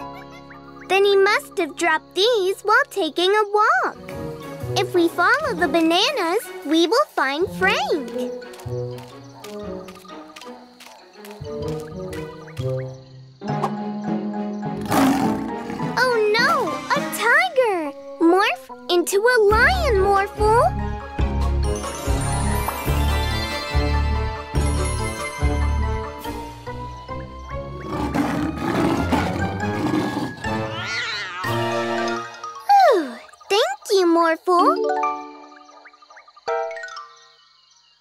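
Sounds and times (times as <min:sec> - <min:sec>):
cartoon background music: 0:00.0 - 0:37.5
cartoon big-cat roar: 0:27.8 - 0:31.8.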